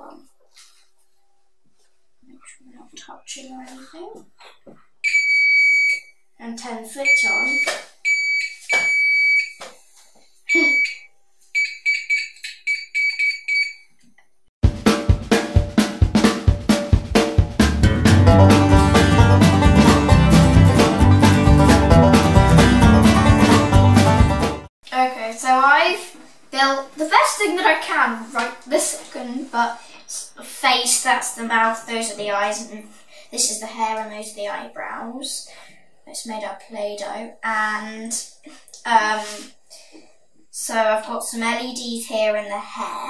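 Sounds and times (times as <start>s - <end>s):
buzzer beeps: 5.0s - 6.1s, 7.0s - 9.6s, 10.5s - 13.9s
loud music with steady beat: 14.6s - 24.7s.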